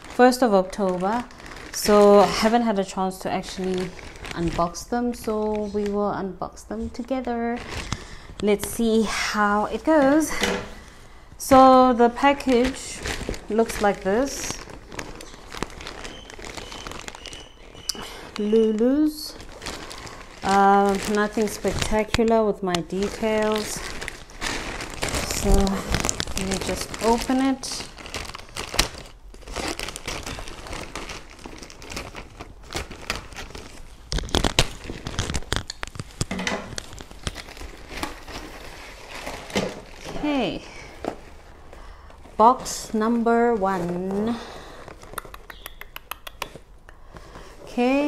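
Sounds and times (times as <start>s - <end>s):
plastic mailer bag crinkling: 0.0s - 6.1s, 7.0s - 45.6s
scissors cutting plastic: 34.1s - 38.3s.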